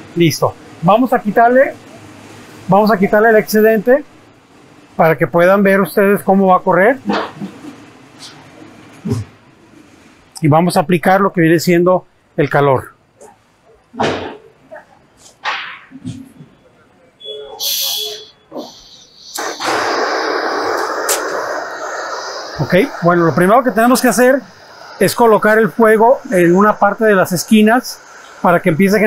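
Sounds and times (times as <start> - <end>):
gas torch hissing flame: 17.6 - 29.0.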